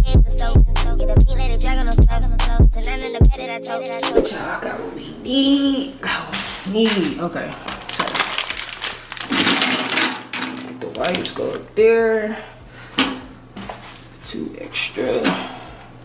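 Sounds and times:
person humming wordless notes: 0:00.0 - 0:06.0
toilet paper wrapping crackling: 0:06.3 - 0:11.7, 0:12.8 - 0:16.0.

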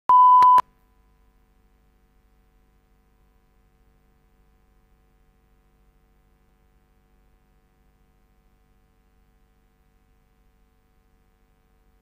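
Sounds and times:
steady test tone beep: 0:00.1 - 0:01.1.

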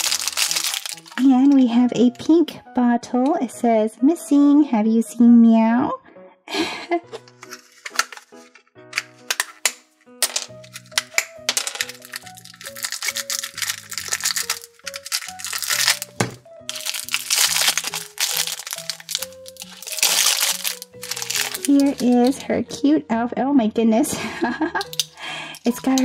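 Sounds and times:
plastic wrappers crinkling: 0:00.0 - 0:01.6, 0:07.4 - 0:22.4, 0:24.8 - 0:26.0
background music: 0:00.0 - 0:26.0.

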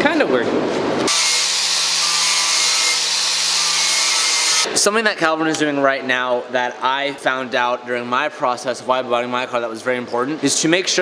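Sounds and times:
angle grinder grinding metal: 0:01.1 - 0:04.7.

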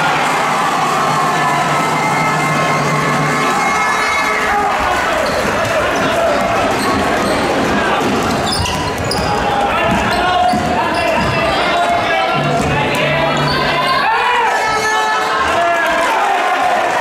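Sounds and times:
players and spectators voices: 0:00.0 - 0:17.0
basketball bouncing on wooden court: 0:05.2 - 0:11.6.

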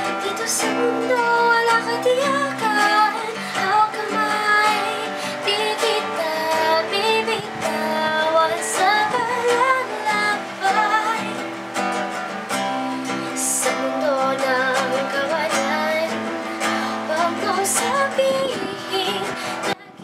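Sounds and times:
strummed acoustic guitar: 0:00.0 - 0:20.0
woman singing slow song: 0:00.0 - 0:20.0.

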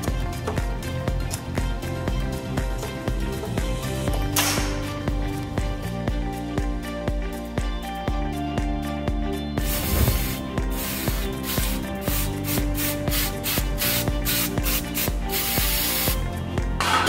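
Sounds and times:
aerosol spray hissing: 0:09.6 - 0:16.2.

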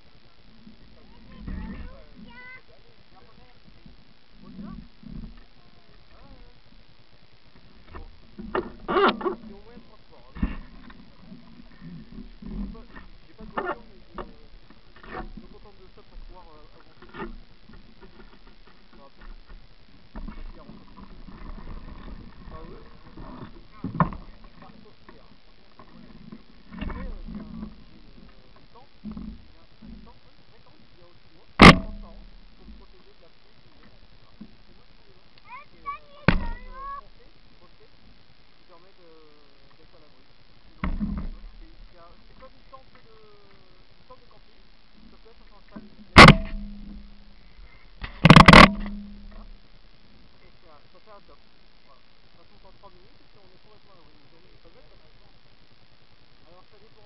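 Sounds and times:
indistinct voices: 0:00.0 - 0:57.0
sharp knocks: 0:31.6 - 0:32.3, 0:36.3 - 0:36.7, 0:46.2 - 0:47.4.

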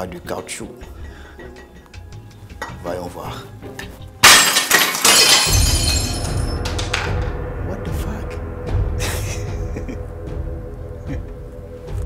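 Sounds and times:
background music with deep bass: 0:00.0 - 0:04.2, 0:05.4 - 0:12.0
glass shattering: 0:04.2 - 0:07.2.

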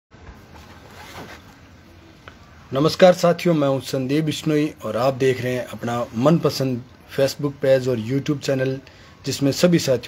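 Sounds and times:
steady background hiss: 0:00.2 - 0:10.0
rustling of hands and sleeves: 0:00.3 - 0:02.4.

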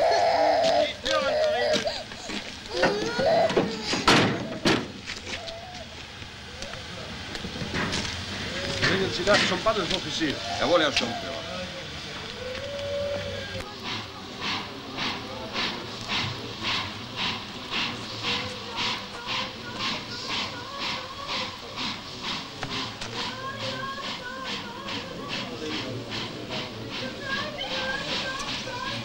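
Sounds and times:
voices wailing: 0:00.0 - 0:07.2, 0:08.4 - 0:29.0
steam locomotive chuffing: 0:00.0 - 0:29.0.

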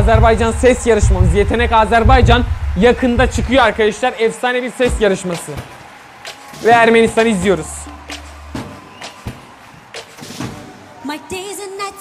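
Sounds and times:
low hum: 0:00.0 - 0:04.0
percussive hits: 0:00.0 - 0:04.1
woman singing: 0:11.0 - 0:12.0.

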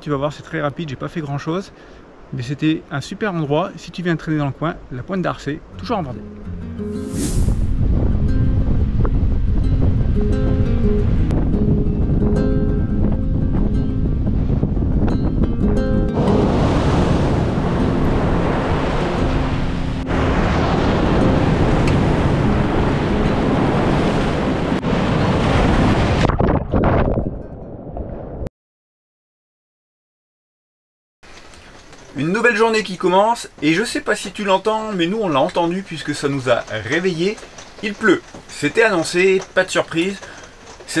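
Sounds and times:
background music: 0:05.8 - 0:24.4
low wind rumble on microphone: 0:06.5 - 0:28.5
breaking surf: 0:06.9 - 0:11.4, 0:15.6 - 0:27.2.

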